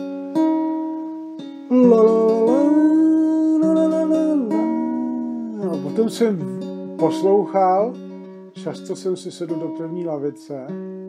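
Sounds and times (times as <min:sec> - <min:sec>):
acoustic guitar plucked notes: 0:00.0 - 0:11.0.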